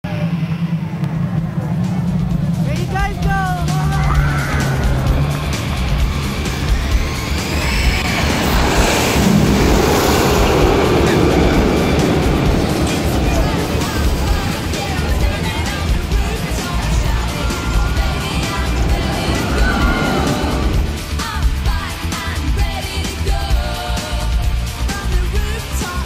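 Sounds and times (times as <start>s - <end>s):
music with voices: 0.0s - 26.0s
park noise: 0.0s - 26.0s
roller coaster rushing along track: 0.0s - 26.0s.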